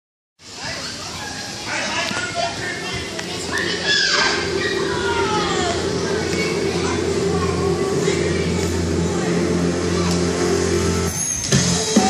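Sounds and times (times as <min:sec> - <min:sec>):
background chatter: 0:00.4 - 0:11.2
children's voices: 0:00.5 - 0:11.1
high call: 0:02.3 - 0:12.0.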